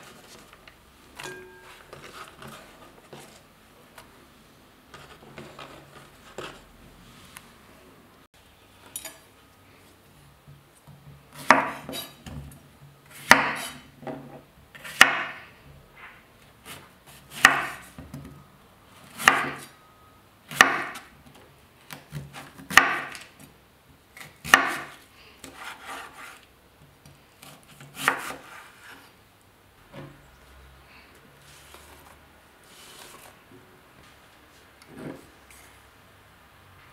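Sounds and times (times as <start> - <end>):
knife slicing cucumber on board: 13.2 - 13.8, 24.2 - 26.4, 27.4 - 29.0.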